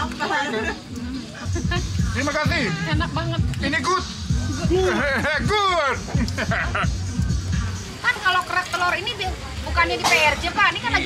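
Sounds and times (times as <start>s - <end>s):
crowd babble: 0.0s - 11.0s
music: 0.0s - 11.0s
voices talking: 0.0s - 11.0s.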